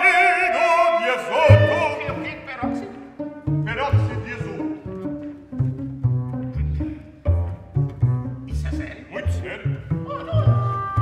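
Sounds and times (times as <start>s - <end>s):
man singing with vibrato: 0.0s - 2.5s
chamber ensemble music: 1.3s - 11.0s
low bowed string notes: 1.4s - 11.0s.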